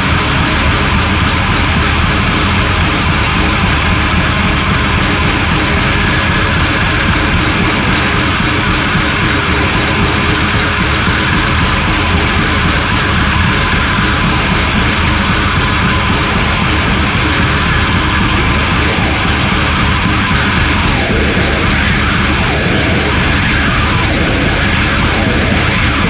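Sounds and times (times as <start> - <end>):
experimental rock music: 0.0 - 26.0.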